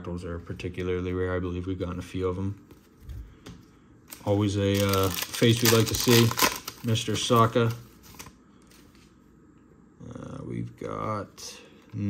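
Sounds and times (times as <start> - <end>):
trading cards rustling and clicking: 4.1 - 9.2.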